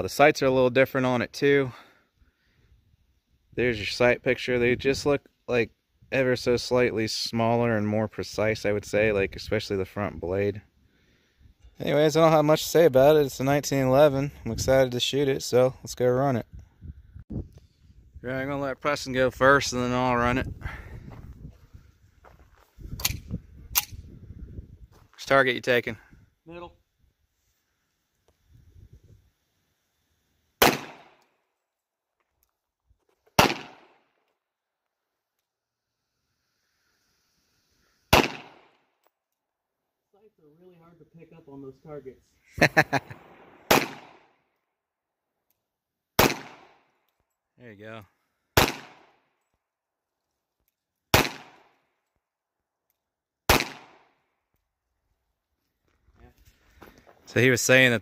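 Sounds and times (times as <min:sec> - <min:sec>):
pistol shots: 0:30.6 - 0:31.2, 0:33.4 - 0:34.0, 0:38.1 - 0:38.8, 0:43.2 - 0:44.3, 0:46.2 - 0:46.9, 0:48.6 - 0:49.2, 0:51.1 - 0:51.8, 0:53.5 - 0:54.2.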